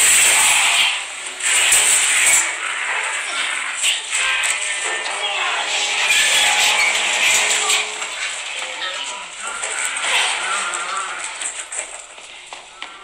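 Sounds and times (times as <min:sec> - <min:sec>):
voices: 0:02.6 - 0:13.0.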